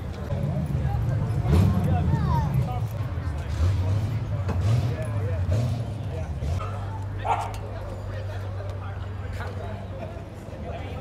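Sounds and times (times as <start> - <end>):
low engine rumble: 0.0 - 11.0
voices: 0.0 - 11.0
dog barking: 6.6 - 7.6.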